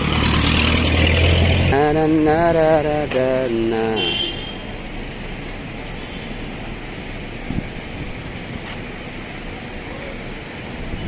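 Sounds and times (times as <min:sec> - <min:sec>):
street traffic noise: 0:00.0 - 0:11.0
wind on microphone: 0:07.4 - 0:08.7.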